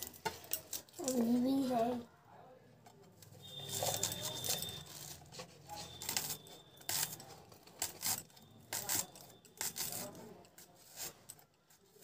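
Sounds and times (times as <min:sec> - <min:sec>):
knife cutting onion: 0:03.7 - 0:11.3.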